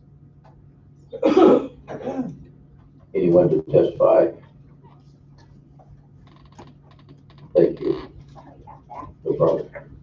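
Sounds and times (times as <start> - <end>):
person clearing throat with cough: 1.1 - 2.5.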